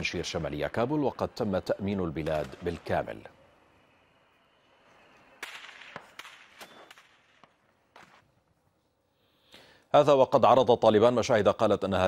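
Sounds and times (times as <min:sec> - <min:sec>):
gunshots with echo: 0:02.0 - 0:03.4, 0:05.3 - 0:08.2.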